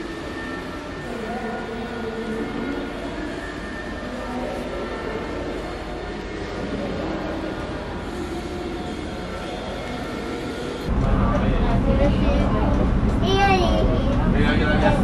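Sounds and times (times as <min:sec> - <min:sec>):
bus rumbling: 0:10.8 - 0:15.0.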